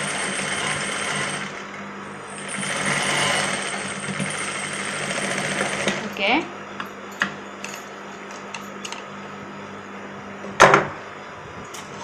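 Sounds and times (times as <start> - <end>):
sewing machine running: 0.0 - 6.2.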